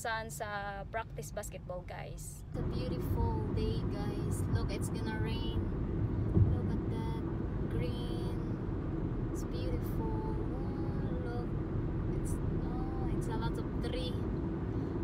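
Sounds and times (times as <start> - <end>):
car road rumble from inside: 0.0 - 15.0.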